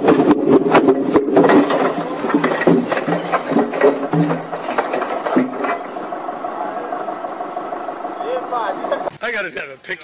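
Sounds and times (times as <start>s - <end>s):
logs knocking: 0.0s - 6.5s
forklift engine running: 0.0s - 9.2s
steady whine: 0.0s - 10.0s.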